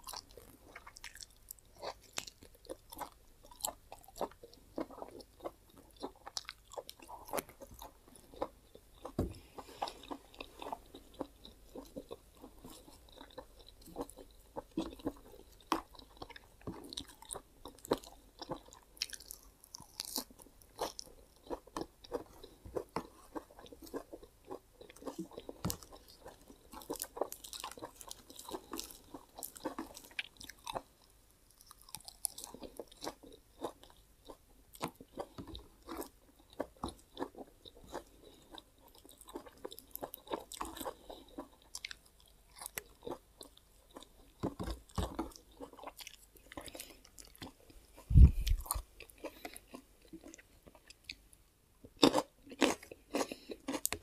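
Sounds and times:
person chewing leafy greens: 0.0 - 54.0.

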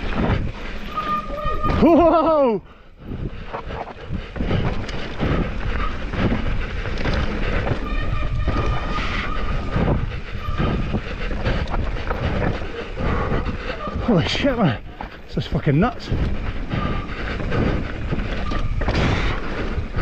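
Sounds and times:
bike tyre rumbling on dirt: 0.0 - 20.0
bike rattling over rocks: 3.6 - 12.9.

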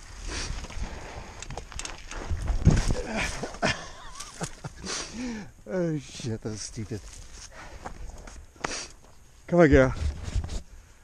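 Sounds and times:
footsteps on dirt trail: 6.7 - 10.2.

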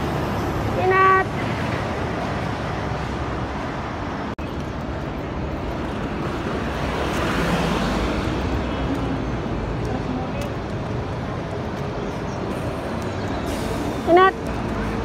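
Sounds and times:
road traffic: 0.0 - 15.0.

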